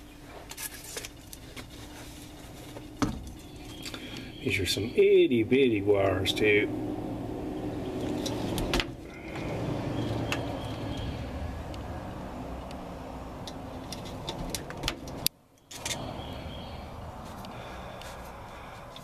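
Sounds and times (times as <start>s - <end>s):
steady low rumble: 2.2s - 19.0s.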